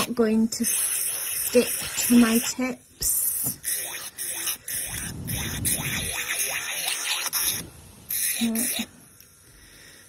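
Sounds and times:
electric nail file grinding: 0.0s - 2.6s, 3.2s - 9.0s.

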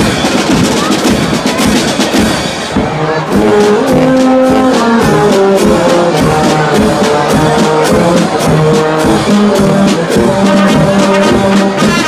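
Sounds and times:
marching drums: 0.0s - 12.0s
brass and saxophone chords: 2.7s - 12.0s.

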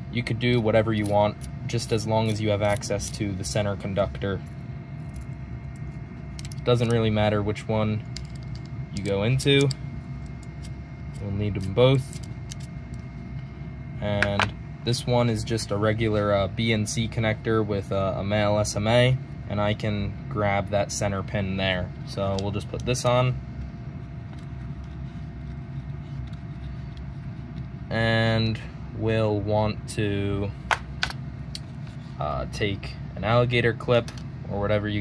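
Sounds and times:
faint steady whine: 0.0s - 35.0s
low background rumble: 0.0s - 35.0s.

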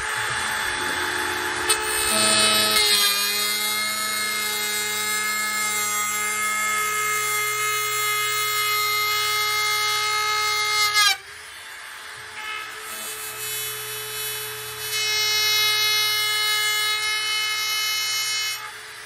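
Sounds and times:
router motor whine: 0.0s - 19.0s.

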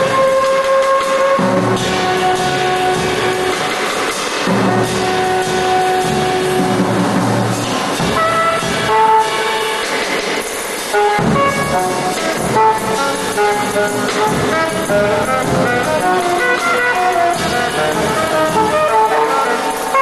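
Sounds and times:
saxophone improvising free jazz: 0.0s - 10.1s, 10.9s - 20.0s.

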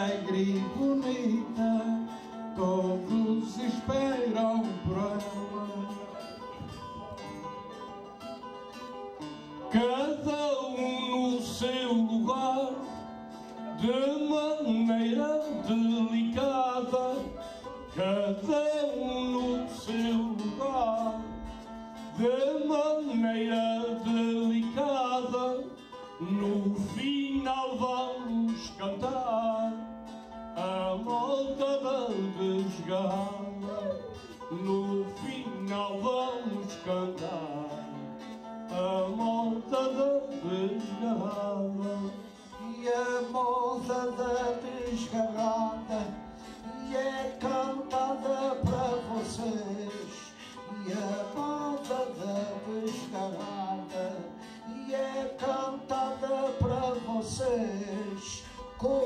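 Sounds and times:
man singing into a microphone: 0.0s - 7.5s, 9.6s - 59.0s
plucked guitar: 0.0s - 59.0s.

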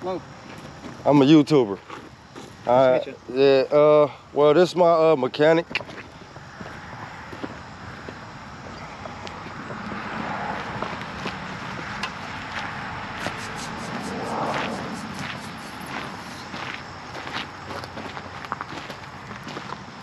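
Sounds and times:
footsteps on gravel: 1.7s - 2.6s, 5.7s - 19.9s.

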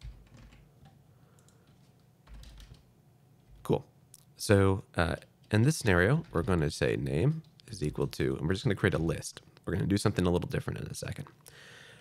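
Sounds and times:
keyboard keystrokes: 0.0s - 2.9s.

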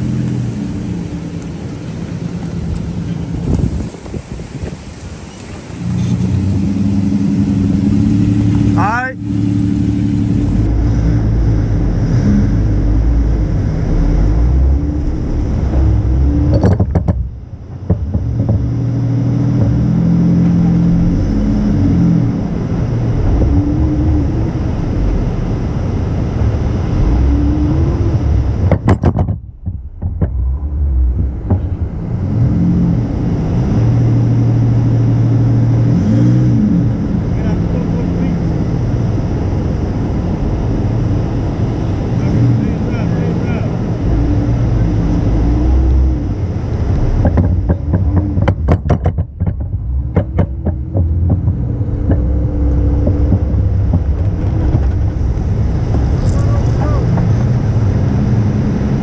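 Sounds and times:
car engine revving under load: 0.0s - 59.0s.

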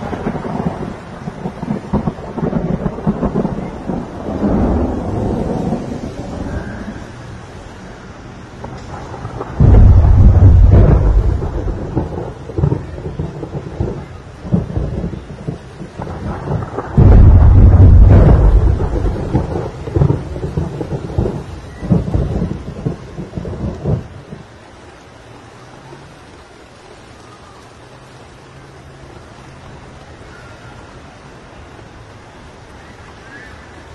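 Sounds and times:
loud thunderclaps: 0.0s - 7.0s, 8.6s - 24.5s
thunder rumbling: 0.0s - 25.0s
steady rain: 0.0s - 33.9s.

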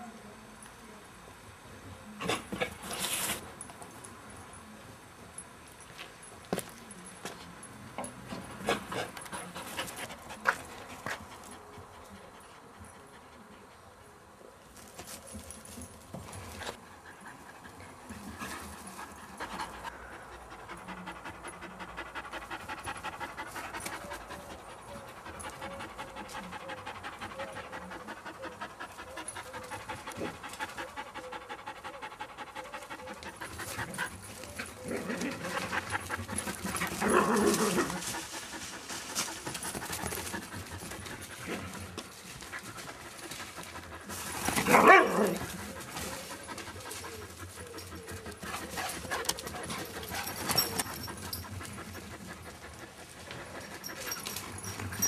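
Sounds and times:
dog panting: 16.6s - 55.0s.

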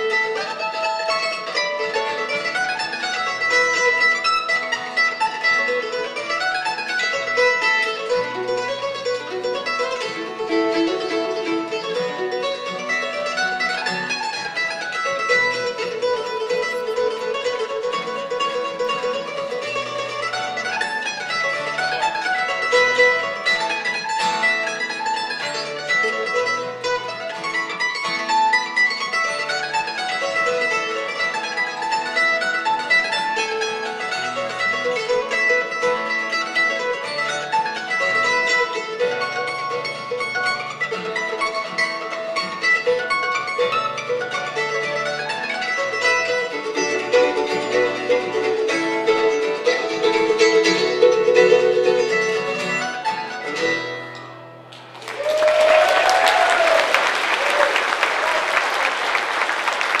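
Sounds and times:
acoustic guitar: 0.0s - 55.0s
mandolin playing bluegrass tune: 0.0s - 60.0s
audience applauding: 54.7s - 60.0s
audience cheering: 54.8s - 60.0s.

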